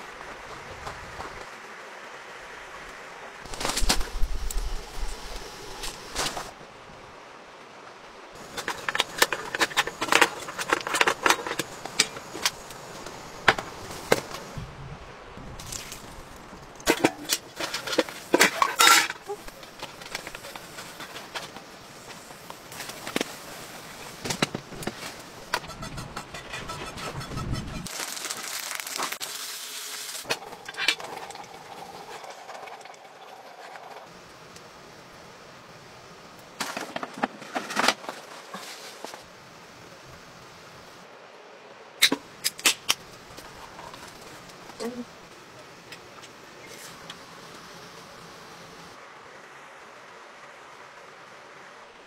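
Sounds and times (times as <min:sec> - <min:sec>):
steady hiss: 0:00.0 - 0:26.4, 0:27.8 - 0:52.0
food packets rustling: 0:08.4 - 0:14.5, 0:27.9 - 0:29.4
metal cookware clinking: 0:16.9 - 0:19.4.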